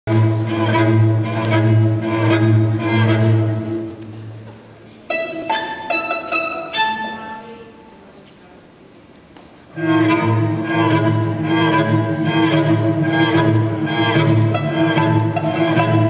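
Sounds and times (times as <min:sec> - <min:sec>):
bowed string music: 0:00.1 - 0:08.1, 0:09.7 - 0:16.0.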